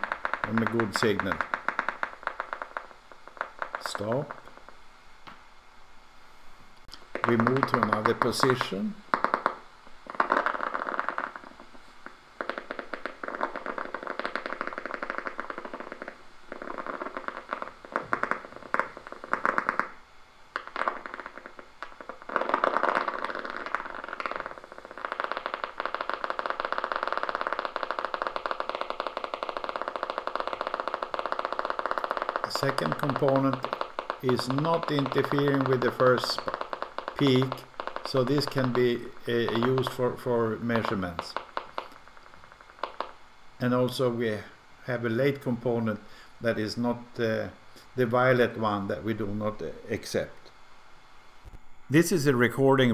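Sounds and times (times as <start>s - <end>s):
crackling clicks from monitor: 0.0s - 5.4s, 6.8s - 43.9s.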